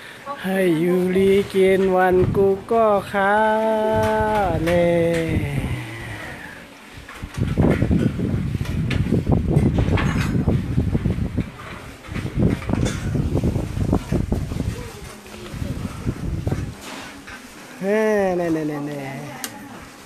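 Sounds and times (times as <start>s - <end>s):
boys talking and eating: 0.0s - 20.0s.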